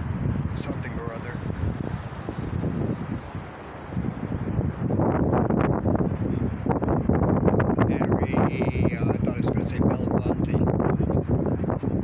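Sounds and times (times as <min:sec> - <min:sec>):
city street traffic rumble: 0:00.0 - 0:12.0
wind buffeting microphone: 0:00.0 - 0:12.0.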